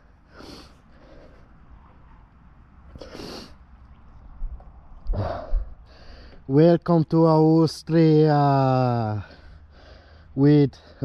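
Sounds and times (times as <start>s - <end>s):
person exhaling breathily: 5.1s - 6.4s.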